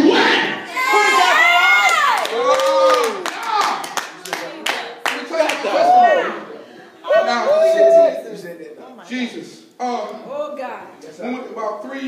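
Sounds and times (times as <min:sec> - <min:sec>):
hand clapping: 0:02.1 - 0:05.6.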